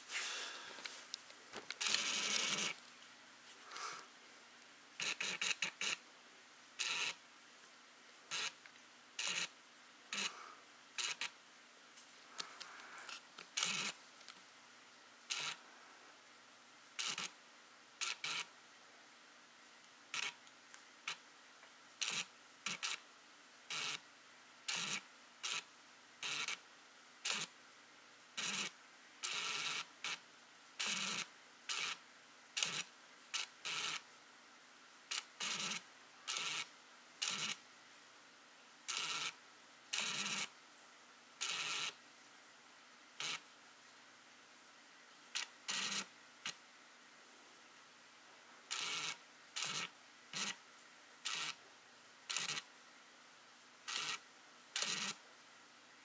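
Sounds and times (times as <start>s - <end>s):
camera clicking and whirring: 0.8s - 2.9s, 5.0s - 6.0s, 6.8s - 7.2s, 8.3s - 10.4s, 11.0s - 11.4s, 12.3s - 14.4s, 15.3s - 15.6s, 17.0s - 17.4s, 18.0s - 18.5s, 20.1s - 20.5s, 22.0s - 23.0s, 23.7s - 24.0s, 24.7s - 26.6s, 27.2s - 27.5s, 28.4s - 30.2s, 30.8s - 32.0s, 32.6s - 34.1s, 35.1s - 37.6s, 38.9s - 40.5s, 41.4s - 42.0s, 43.2s - 43.4s, 45.3s - 46.6s, 48.7s - 50.6s, 51.2s - 51.6s, 52.3s - 52.7s, 53.9s - 54.2s, 54.8s - 55.2s.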